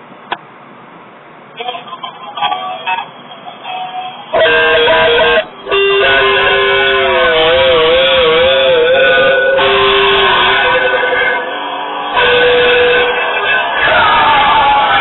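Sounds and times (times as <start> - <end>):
electric guitar playing punk: 3.6 - 15.0.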